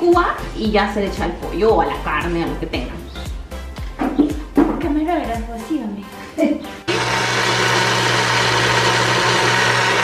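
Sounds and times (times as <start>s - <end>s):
blender motor running: 6.9s - 10.0s.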